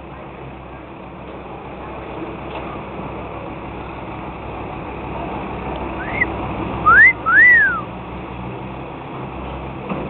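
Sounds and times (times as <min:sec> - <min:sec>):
person whistling: 0:06.0 - 0:06.3, 0:06.9 - 0:07.8.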